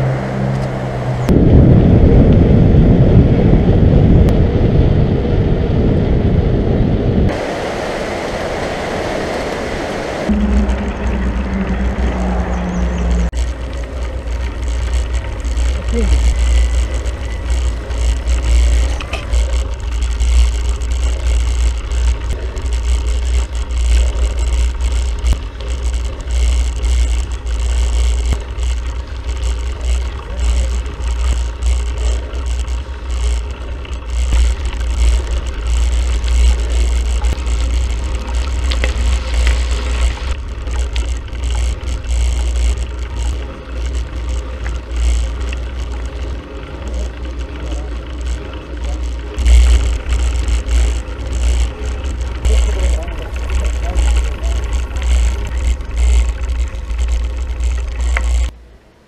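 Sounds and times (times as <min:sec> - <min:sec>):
wind buffeting microphone: 0:00.0 - 0:46.5
tyres rolling on road: 0:00.0 - 0:59.0.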